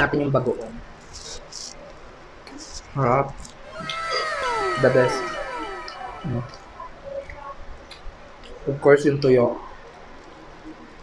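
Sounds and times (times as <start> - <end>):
cat meowing: 3.7 - 6.6.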